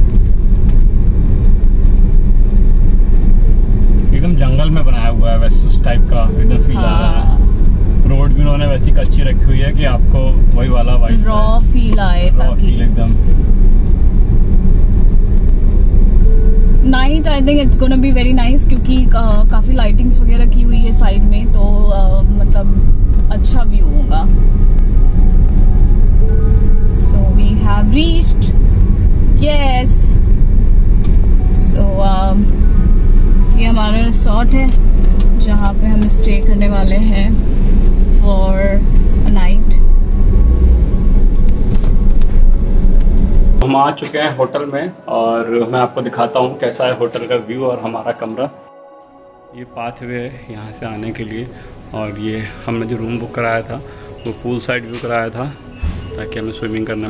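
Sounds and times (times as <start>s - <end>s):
car engine and tyres rumbling: 0.0s - 48.5s, 49.6s - 57.0s
road noise: 0.0s - 57.0s.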